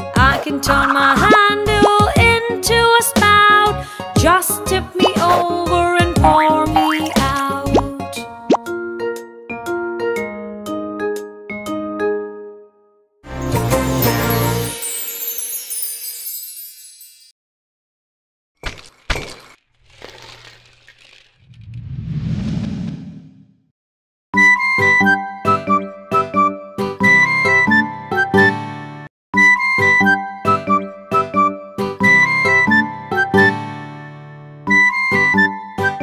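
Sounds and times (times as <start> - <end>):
cheerful children's music: 0.0 - 12.6, 13.3 - 17.3, 24.4 - 36.0
cartoon pitch slides: 6.7 - 7.4
sugar cubes clattering: 18.7 - 21.4.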